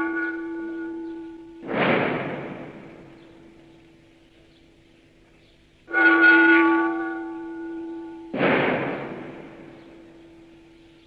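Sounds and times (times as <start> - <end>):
cymbal crash: 1.6 - 3.5, 8.3 - 10.7.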